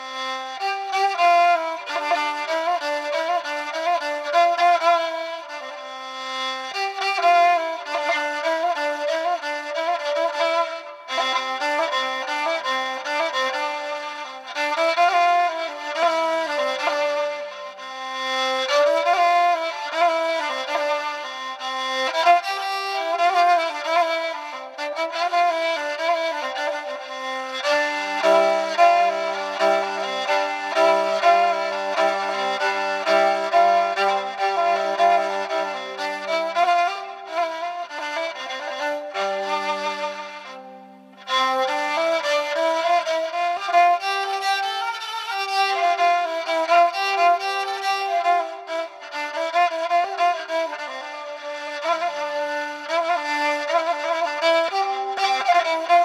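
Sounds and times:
bowed string melody: 0.0s - 56.0s.

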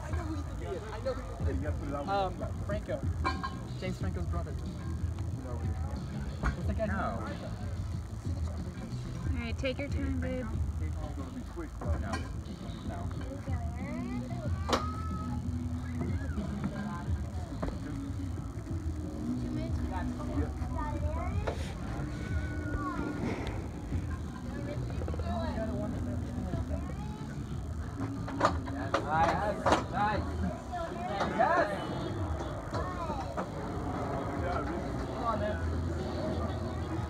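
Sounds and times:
background voices talking: 0.0s - 37.0s
music playing: 0.0s - 37.0s.

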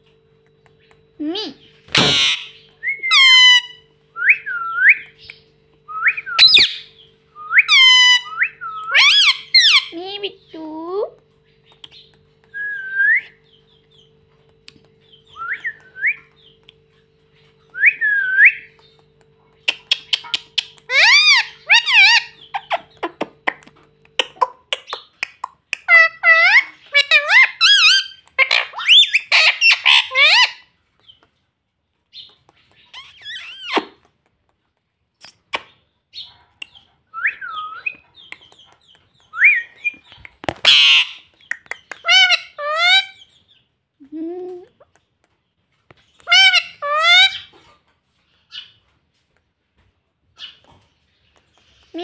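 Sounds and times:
parakeet chirping and chattering: 0.6s - 3.9s, 6.4s - 7.1s, 7.7s - 12.4s, 18.5s - 31.2s, 32.1s - 34.2s, 35.2s - 43.6s, 45.9s - 47.8s
parakeet harsh squawk: 1.9s - 3.8s, 8.9s - 9.9s, 25.9s - 30.6s, 40.6s - 41.2s, 46.3s - 47.5s.

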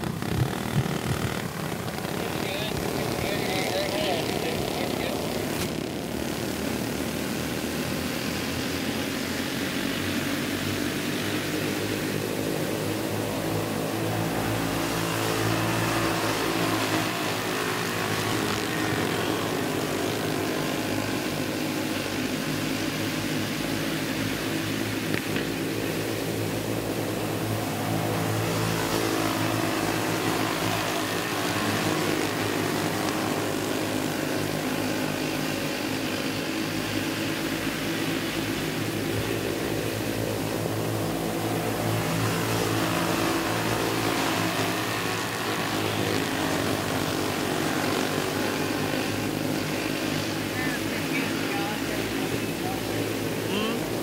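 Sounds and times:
go-kart engines buzzing: 0.0s - 54.0s.

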